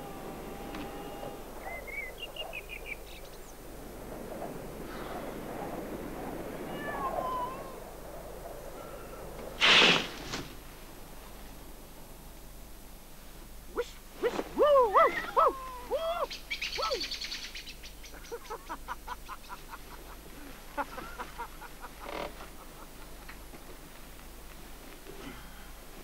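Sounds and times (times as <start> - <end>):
birds calling: 0.0 - 9.5, 14.9 - 23.6.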